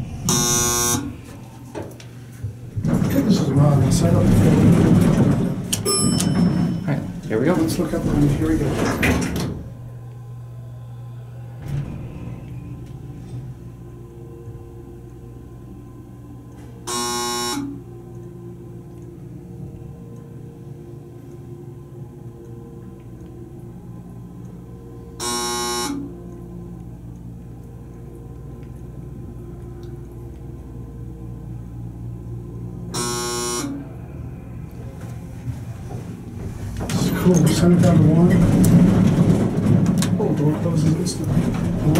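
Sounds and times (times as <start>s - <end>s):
elevator low hum: 0.0s - 41.9s
buzzy electronic signal tone: 0.1s - 1.3s, 16.9s - 17.9s, 25.2s - 26.2s, 32.9s - 34.0s.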